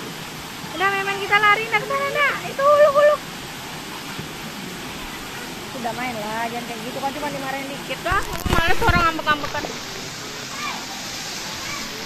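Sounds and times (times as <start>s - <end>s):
pool water rushing and lapping: 0.0s - 12.0s.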